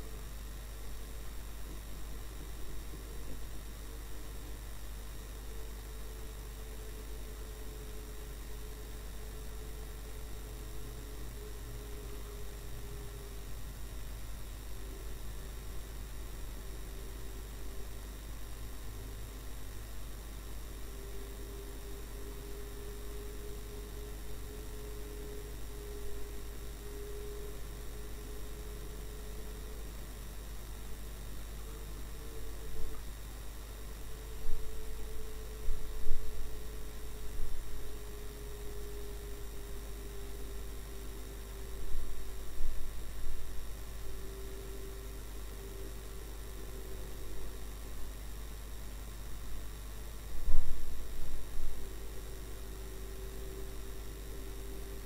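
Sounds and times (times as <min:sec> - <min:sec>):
electrical whine: 0:00.0 - 0:55.0.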